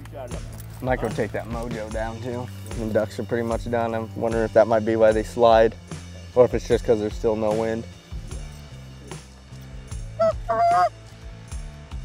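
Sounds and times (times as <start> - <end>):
goose honks: 10.2 - 10.9.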